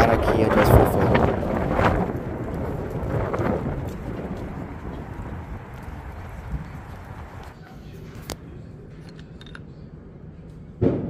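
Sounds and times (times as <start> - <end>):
wind buffeting microphone: 0.0 - 8.3.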